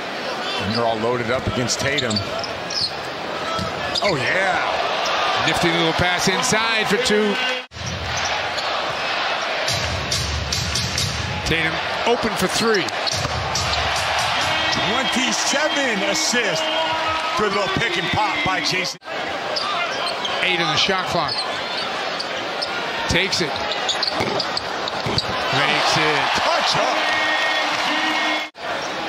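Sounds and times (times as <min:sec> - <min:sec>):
arena crowd noise: 0:00.0 - 0:29.0.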